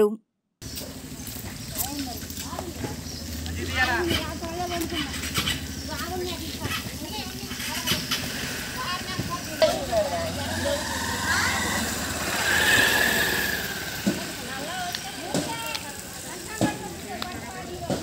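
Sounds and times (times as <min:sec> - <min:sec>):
small engine idling: 0:00.6 - 0:18.0
people's voices: 0:01.4 - 0:18.0.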